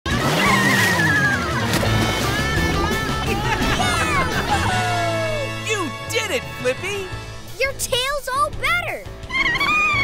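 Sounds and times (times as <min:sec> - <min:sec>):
water splash: 0:00.2 - 0:04.8
cartoon music: 0:00.2 - 0:10.0.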